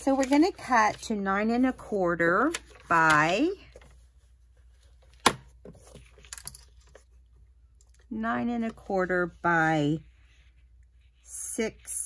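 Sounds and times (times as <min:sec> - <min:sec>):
paper rustling: 0:00.0 - 0:04.0.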